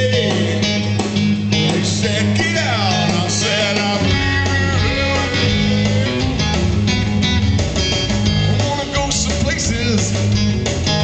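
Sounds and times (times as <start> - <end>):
amplified electric guitar: 0.0 - 11.0
bass guitar: 0.0 - 11.0
drums: 0.0 - 11.0.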